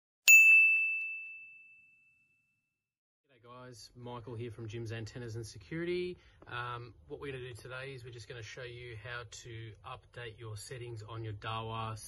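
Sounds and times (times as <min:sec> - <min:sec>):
bell-like ding chime: 0:00.3 - 0:02.7.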